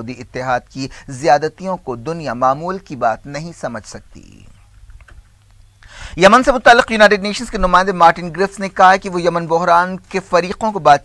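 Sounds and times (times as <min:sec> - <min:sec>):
man reading news: 0:00.0 - 0:04.9, 0:05.9 - 0:11.0.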